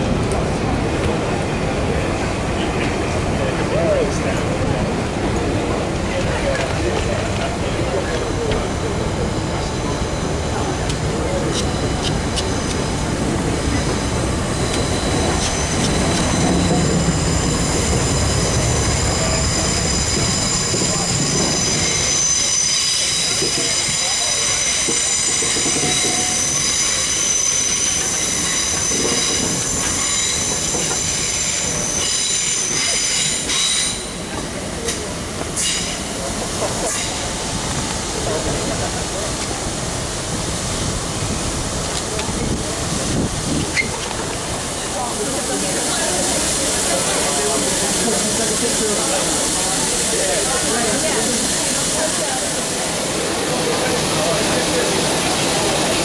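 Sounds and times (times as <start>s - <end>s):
low train rumble: 0.0s - 56.0s
train wheels squealing: 7.8s - 34.3s, 35.6s - 36.1s, 43.7s - 44.1s.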